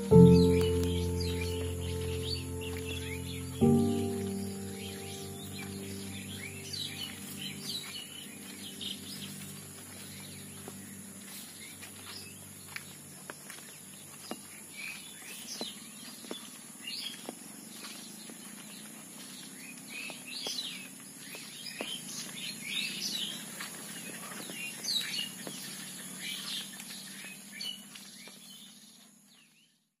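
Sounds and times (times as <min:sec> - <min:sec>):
high-pitched drone: 0:00.0 - 0:11.9
birds chirping and calling: 0:00.0 - 0:12.8.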